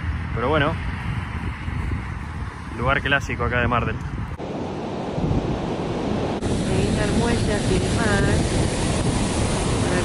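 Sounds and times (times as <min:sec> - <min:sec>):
wind buffeting microphone: 0:00.0 - 0:10.0
sea surf breaking: 0:04.4 - 0:10.0.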